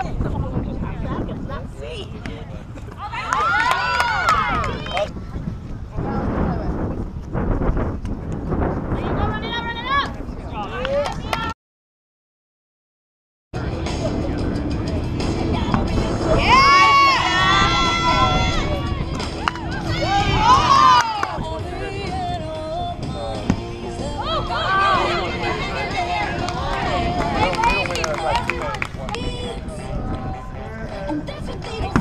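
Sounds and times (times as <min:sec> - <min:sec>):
women shouting: 0:16.3 - 0:18.9, 0:19.7 - 0:21.3, 0:24.2 - 0:26.4.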